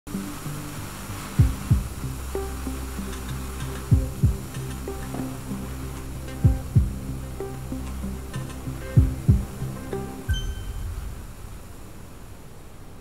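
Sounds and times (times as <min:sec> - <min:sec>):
low suspense drone: 0:00.1 - 0:12.3
heartbeat-like double thump: 0:01.4 - 0:02.0, 0:03.9 - 0:04.5, 0:06.4 - 0:07.0, 0:09.0 - 0:09.6.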